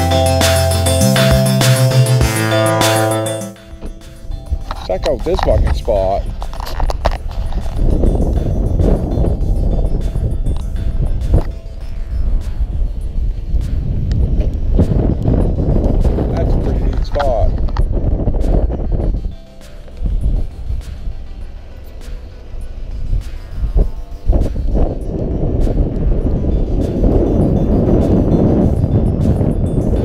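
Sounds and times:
background music: 0.0s - 30.0s
wind buffeting microphone: 3.7s - 30.0s.

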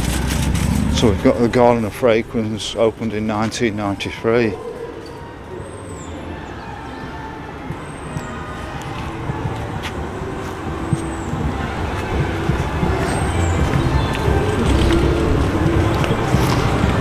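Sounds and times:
road traffic noise: 0.0s - 17.0s.

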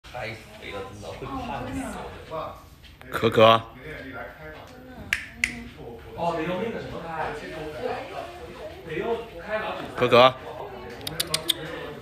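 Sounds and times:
finger snaps: 5.1s - 5.6s, 11.0s - 11.6s.

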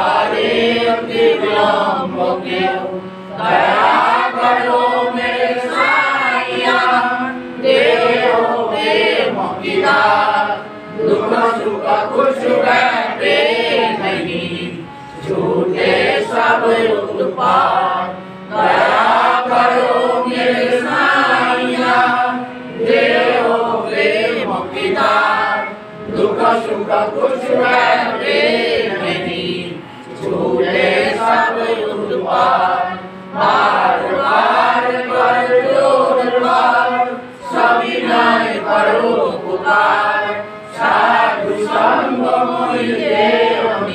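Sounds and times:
group chanting a prayer: 0.0s - 43.9s.

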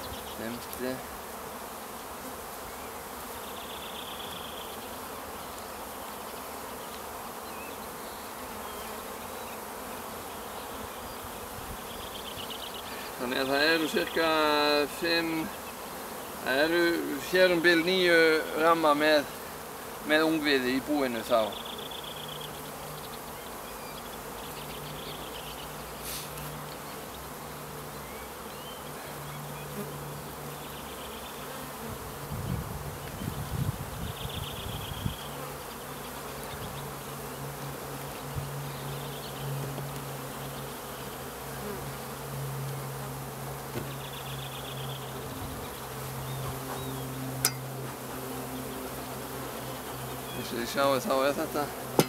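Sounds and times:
honeybees buzzing: 0.0s - 52.0s.

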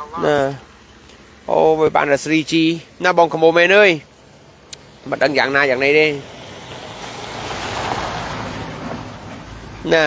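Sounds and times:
vehicle passing close by: 4.4s - 10.0s.

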